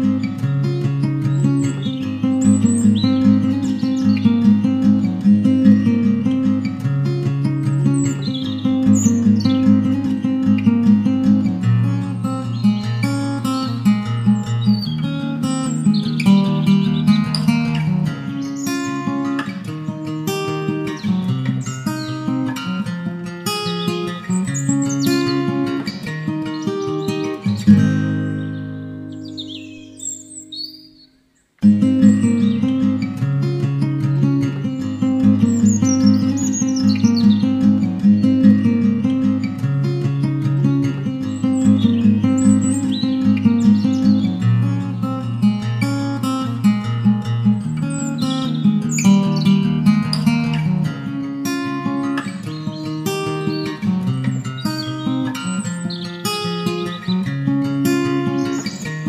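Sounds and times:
acoustic guitar melody: 0.0s - 59.0s
birds chirping: 0.0s - 59.0s.

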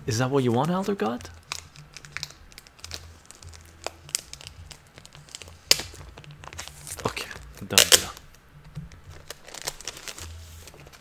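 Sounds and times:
paper rustling: 8.9s - 11.0s.

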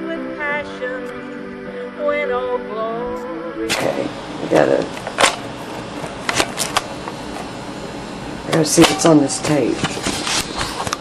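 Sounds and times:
person singing with music: 0.0s - 4.8s.

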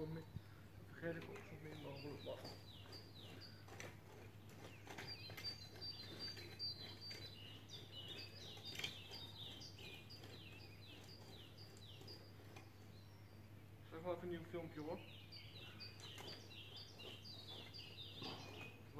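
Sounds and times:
bird chirping: 0.0s - 18.9s
garden hoe scraping soil: 1.1s - 13.2s, 15.0s - 18.9s.

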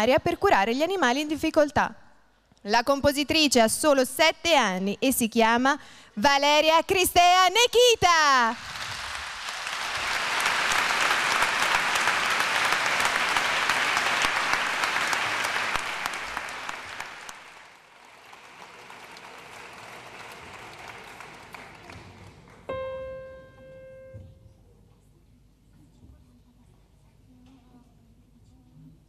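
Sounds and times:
audience applauding: 8.6s - 22.8s
grand piano note ringing: 22.7s - 24.5s.

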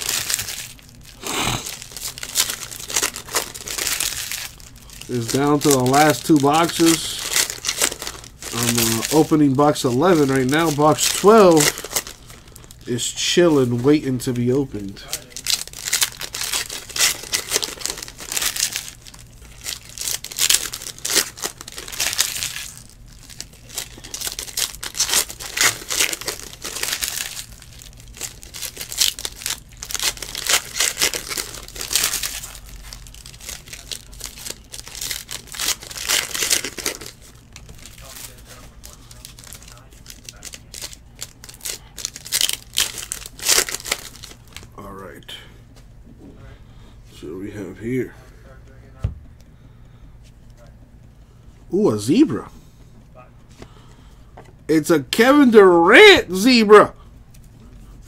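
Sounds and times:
cards rustling: 0.0s - 44.7s
wrappers tearing and crinkling: 0.0s - 44.8s, 54.7s - 58.0s.

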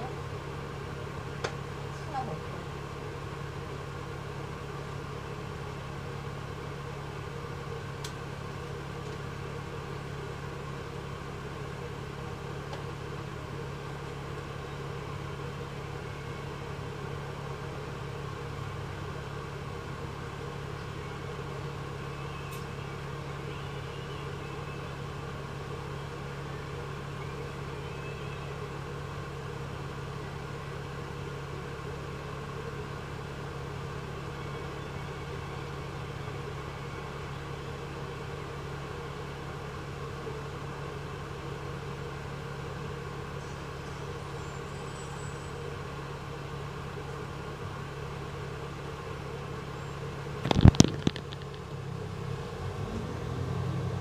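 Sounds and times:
bus engine hum: 0.0s - 54.0s
faint clicks: 50.4s - 51.8s.

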